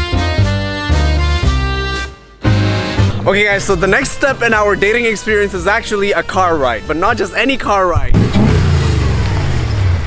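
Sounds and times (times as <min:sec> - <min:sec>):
sports car engine revving: 0:08.1 - 0:10.0.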